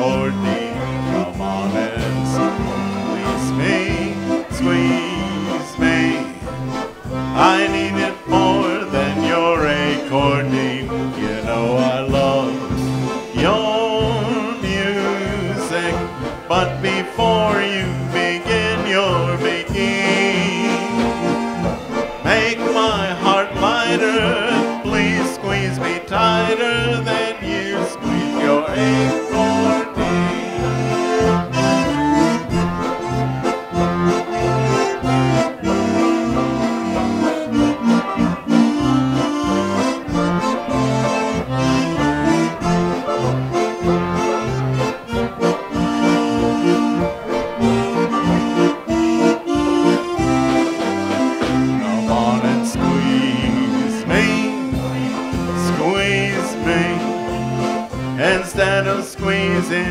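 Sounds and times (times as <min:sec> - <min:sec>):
person singing: 0:00.0 - 0:32.9, 0:50.8 - 0:59.9
concertina melody: 0:00.0 - 0:59.9
oom-pah bass rhythm: 0:00.0 - 0:59.9.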